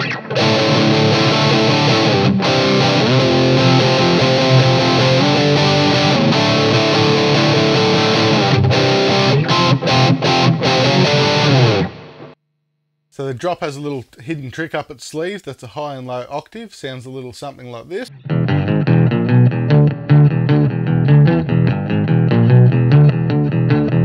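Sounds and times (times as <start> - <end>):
fuzzed electric guitar chords: 0.0 - 12.4, 18.1 - 24.0.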